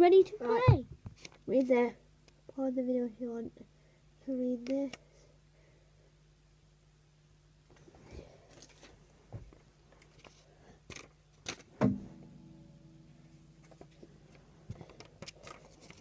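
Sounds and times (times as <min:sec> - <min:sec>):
guitar strings ringing: 0:11.8 - 0:14.4.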